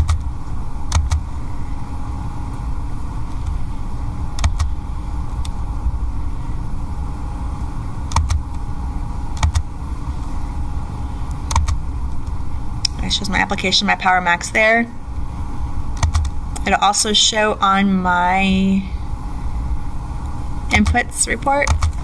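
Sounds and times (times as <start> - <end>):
low room rumble: 0.0 - 22.0
computer mouse clicks: 4.4 - 4.7, 8.1 - 8.4, 9.4 - 9.6, 11.5 - 11.8.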